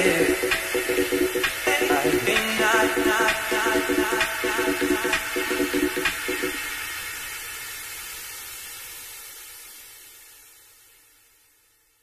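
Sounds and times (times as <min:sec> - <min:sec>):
electronic white noise hiss: 0:00.0 - 0:12.0.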